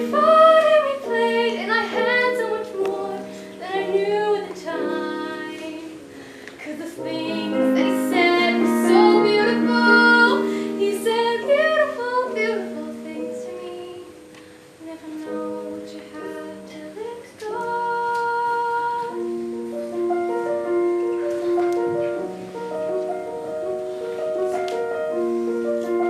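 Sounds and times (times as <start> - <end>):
woman singing: 0.0 - 19.4
piano playing: 0.0 - 26.0.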